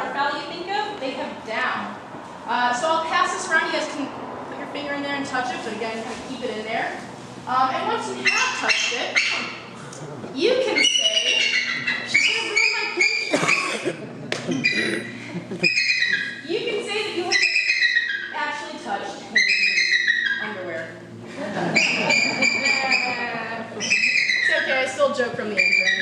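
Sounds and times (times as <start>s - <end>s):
people talking: 0.0s - 9.4s, 10.0s - 13.9s, 14.5s - 15.1s, 16.3s - 17.7s, 18.3s - 26.0s.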